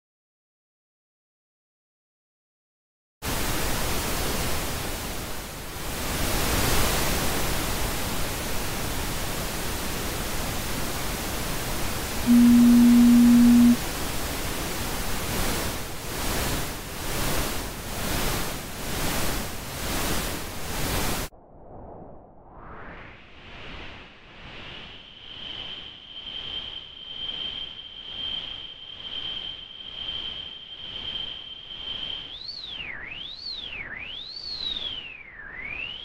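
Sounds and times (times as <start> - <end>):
synthesizer noise hissing: 11.8 - 13.9
steady pitched tone: 12.2 - 13.8.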